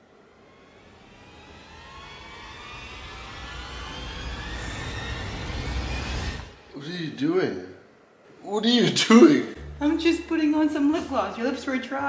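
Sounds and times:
whooshing riser rising in pitch: 0.2s - 6.7s
low rumble: 0.6s - 6.7s, 9.6s - 12.0s.

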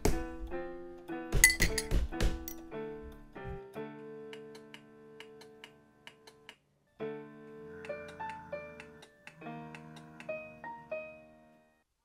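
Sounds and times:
electronic keyboard music: 2.7s - 11.8s.

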